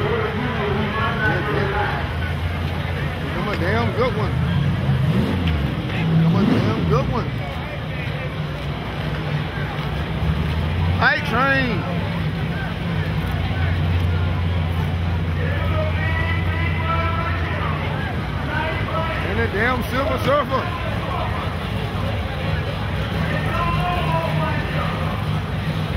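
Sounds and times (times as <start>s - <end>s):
crowd voices: 0.0s - 25.9s
race car engine idling: 0.0s - 25.9s
loud shout: 23.2s - 25.1s.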